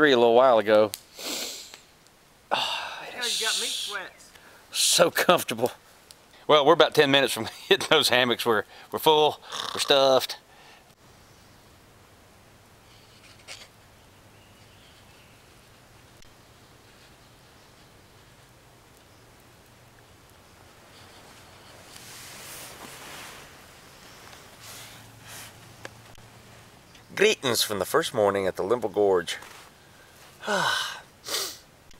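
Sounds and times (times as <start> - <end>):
faint hiss: 0.0 - 31.9
rustling of fabric: 20.8 - 26.8, 29.3 - 30.4.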